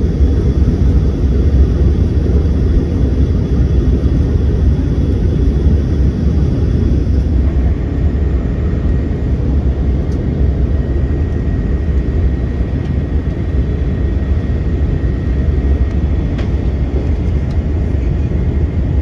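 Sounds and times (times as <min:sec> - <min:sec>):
jet engine and airflow rumble: 0:00.0 - 0:19.0.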